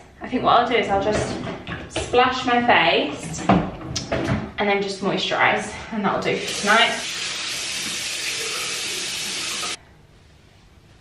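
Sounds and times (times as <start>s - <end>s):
tap running into a basin: 6.4s - 9.8s.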